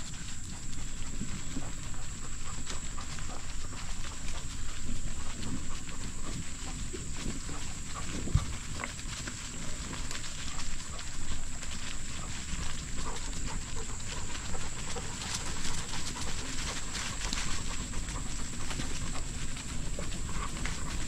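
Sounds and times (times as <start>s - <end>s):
bicycle tyres crunching on dirt: 0.0s - 21.0s
wind rumble on microphone: 0.0s - 21.0s.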